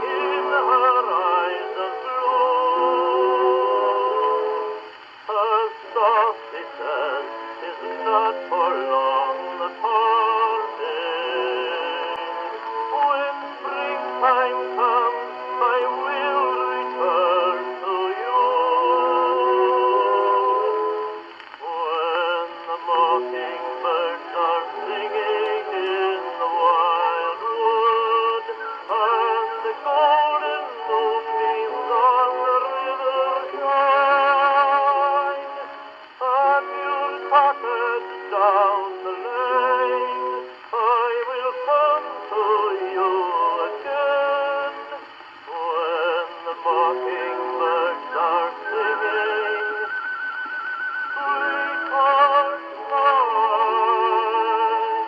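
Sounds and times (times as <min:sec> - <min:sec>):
tinny song with vibrato voice: 0:00.0 - 0:55.0.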